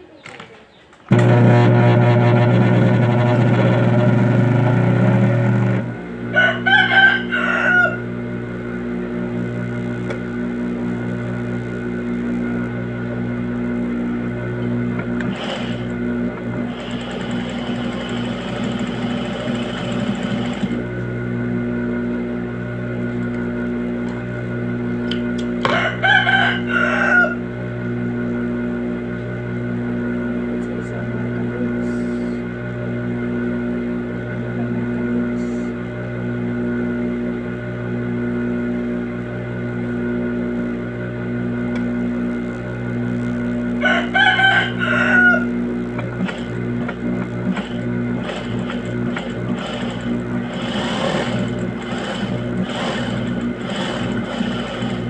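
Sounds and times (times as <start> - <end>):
rooster crowing: 6.3 - 8.1, 25.6 - 27.5, 43.8 - 45.6.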